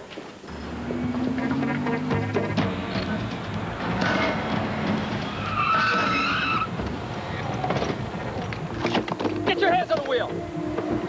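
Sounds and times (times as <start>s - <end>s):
car driving fast: 0.5s - 9.2s
tyres squealing: 0.5s - 11.0s.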